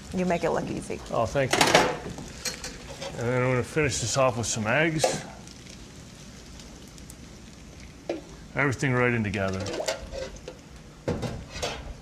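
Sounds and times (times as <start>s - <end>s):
food sizzling in a hot pan: 0.0s - 12.0s.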